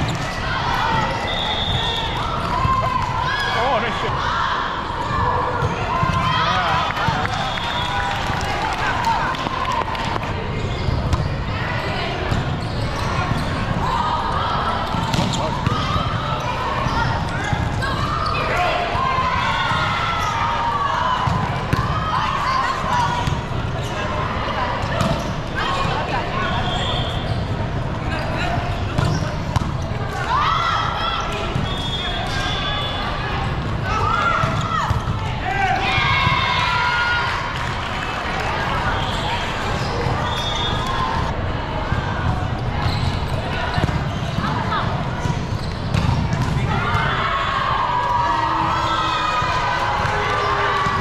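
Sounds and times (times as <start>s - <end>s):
hum of voices in a hall: 0.0s - 51.0s.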